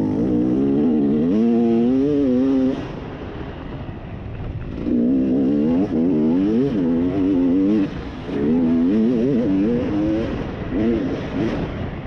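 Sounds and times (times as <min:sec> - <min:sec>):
dirt bike engine revving: 0:00.0 - 0:03.0, 0:04.6 - 0:11.9.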